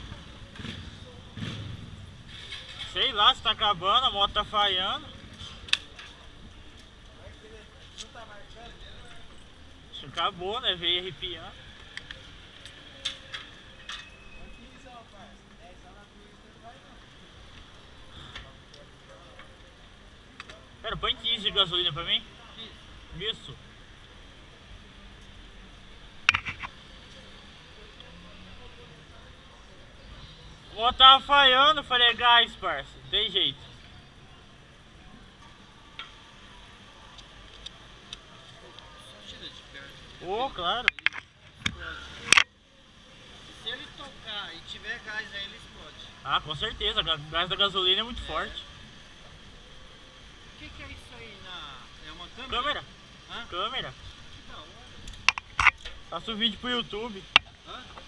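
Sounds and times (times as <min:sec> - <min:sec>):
faint indistinct voices: 0:00.0 - 0:58.0
sharp clicks and taps: 0:26.3 - 0:26.7, 0:40.9 - 0:42.5, 0:55.1 - 0:56.0.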